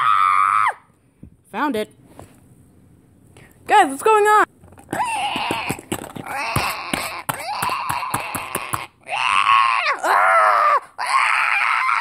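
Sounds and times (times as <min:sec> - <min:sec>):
person screaming and groaning: 0:00.0 - 0:00.8, 0:04.9 - 0:12.0.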